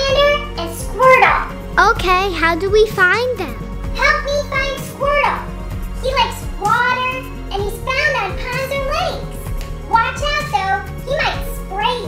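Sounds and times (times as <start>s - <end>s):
background music: 0.0s - 12.0s
childlike voice chattering: 1.8s - 3.6s.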